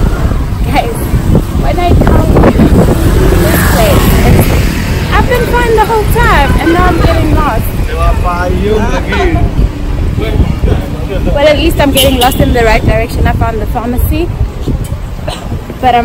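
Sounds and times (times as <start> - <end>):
street traffic: 0.0 - 16.0
wind buffeting microphone: 0.0 - 16.0.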